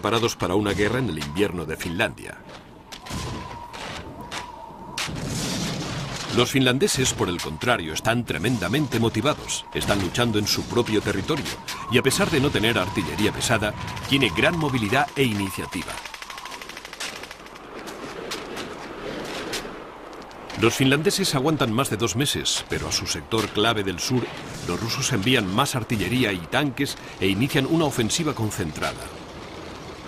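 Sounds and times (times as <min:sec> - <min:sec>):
field gun heavy report: 0:00.0 - 0:03.6, 0:06.1 - 0:17.0, 0:20.6 - 0:29.2
sharp cracks: 0:00.0 - 0:20.8.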